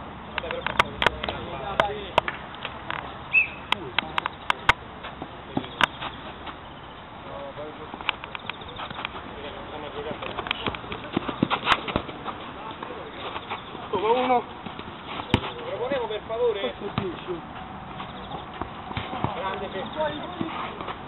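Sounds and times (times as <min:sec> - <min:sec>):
outdoor background noise: 0:00.0 - 0:21.0
ball being kicked: 0:14.6 - 0:15.6, 0:16.8 - 0:17.2, 0:18.0 - 0:21.0.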